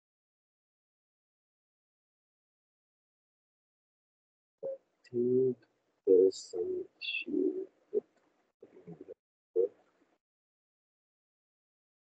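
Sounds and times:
man's garbled voice over video call: 0:05.1 - 0:07.6.

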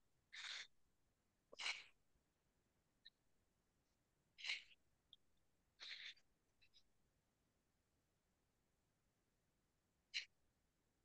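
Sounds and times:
person breathing: 0:00.3 - 0:00.7.

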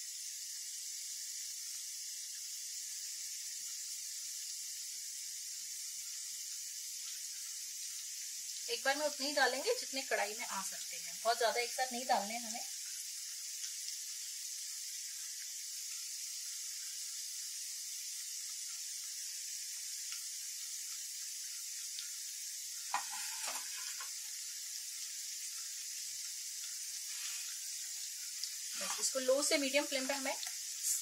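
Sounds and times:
food deep-frying in oil: 0:00.0 - 0:31.0.

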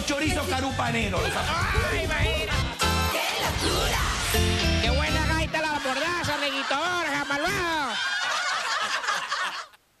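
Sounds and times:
rapid laughter: 0:05.6 - 0:09.8.

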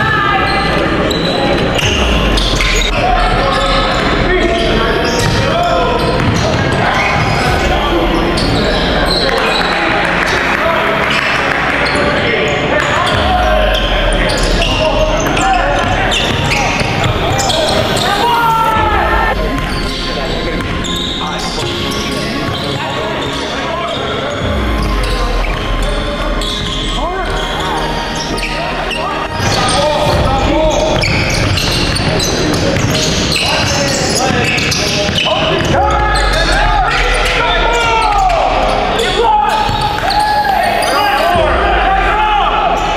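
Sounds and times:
players calling out: 0:00.0 - 0:42.9
basketball bouncing on court: 0:06.0 - 0:07.3.

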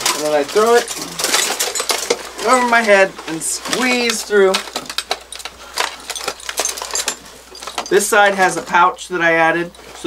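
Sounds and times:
metal and plastic trinkets clinking: 0:00.0 - 0:10.0.

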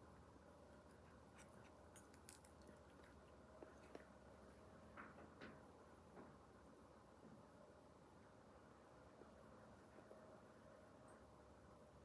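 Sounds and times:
crust crackling while chewed: 0:00.6 - 0:05.6.

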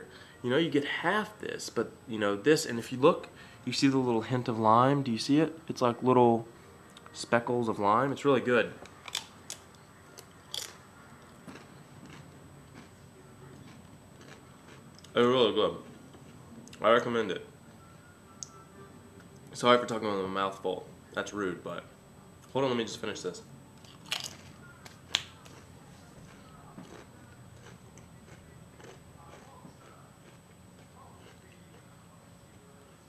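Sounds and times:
chewing: 0:08.9 - 0:15.2, 0:23.9 - 0:32.0
chip crunching: 0:08.9 - 0:15.9, 0:23.8 - 0:31.9.

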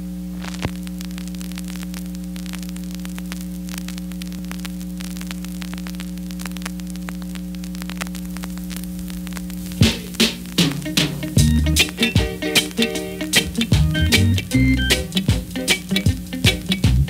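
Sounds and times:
steady electrical hum: 0:00.0 - 0:17.0
vinyl record crackle and pops: 0:00.0 - 0:17.0.

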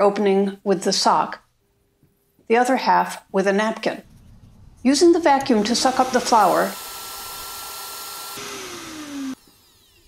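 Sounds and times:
vacuum cleaner running: 0:05.3 - 0:10.0.

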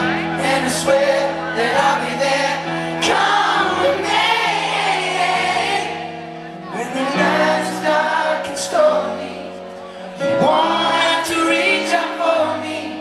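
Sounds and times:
man singing into a microphone: 0:00.0 - 0:04.1, 0:06.7 - 0:13.0.

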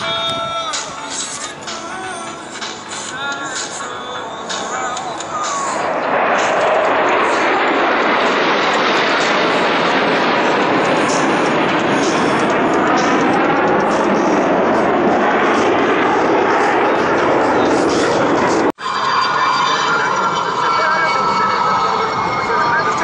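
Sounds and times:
jet engines flying overhead: 0:00.0 - 0:23.0.

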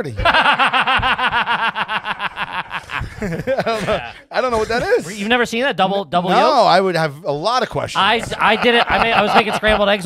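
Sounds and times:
men laughing hard: 0:00.1 - 0:05.0, 0:08.0 - 0:10.0.

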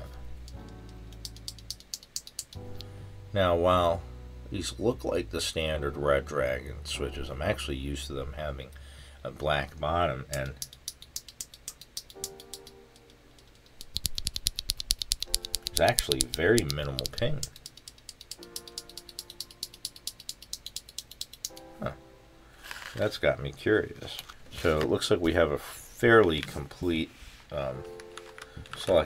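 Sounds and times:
background music sustained tones: 0:00.0 - 0:10.2, 0:12.1 - 0:13.7, 0:15.3 - 0:17.5, 0:18.3 - 0:20.3, 0:21.5 - 0:22.8
rapid keyboard switch clicking: 0:00.4 - 0:02.9, 0:10.3 - 0:21.7
plastic keyboard switches clicking: 0:13.8 - 0:19.0.

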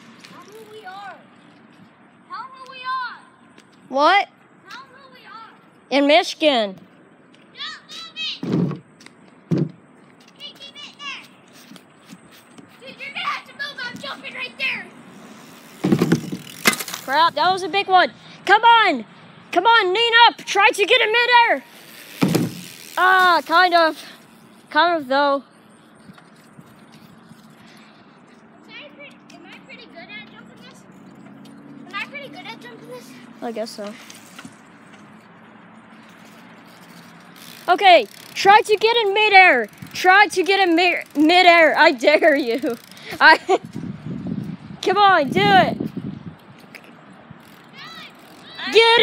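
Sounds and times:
children calling out: 0:07.5 - 0:08.4, 0:10.3 - 0:11.4, 0:12.8 - 0:15.0, 0:47.6 - 0:49.0
bicycle tyres thumping on ramp: 0:08.4 - 0:09.8, 0:15.7 - 0:17.2, 0:21.9 - 0:22.9.

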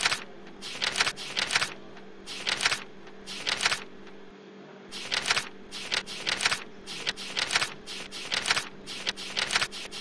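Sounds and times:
mouse scroll wheel clicks: 0:00.0 - 0:04.2, 0:05.0 - 0:10.0
low electrical hum: 0:00.0 - 0:10.0.

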